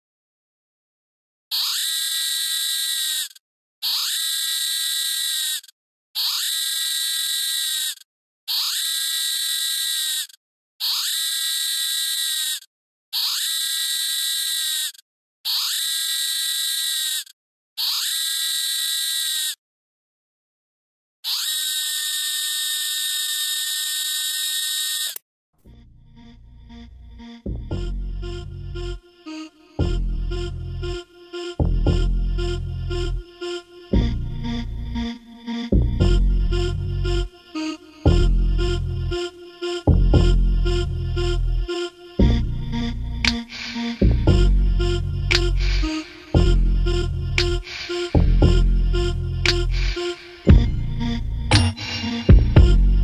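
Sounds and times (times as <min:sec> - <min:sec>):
harsh electronic buzzer: 0:01.5 - 0:19.6, 0:21.2 - 0:25.2, 0:26.2 - 0:35.4, 0:37.2 - 0:44.0, 0:44.8 - 0:52.7.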